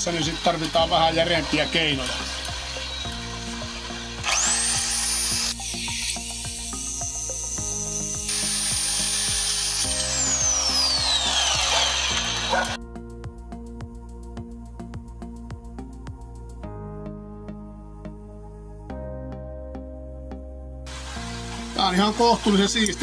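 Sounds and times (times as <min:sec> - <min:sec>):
reciprocating saw cutting metal: 0:00.0 - 0:12.8
background music: 0:00.0 - 0:23.0.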